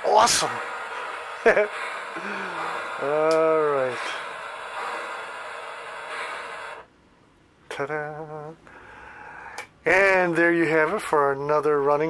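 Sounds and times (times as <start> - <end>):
steady hiss: 0.0 - 6.9.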